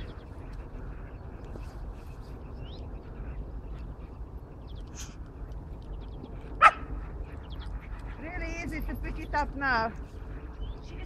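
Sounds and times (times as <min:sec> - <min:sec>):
steady low rumble: 0:00.0 - 0:11.0
loud dog bark: 0:06.6 - 0:06.9.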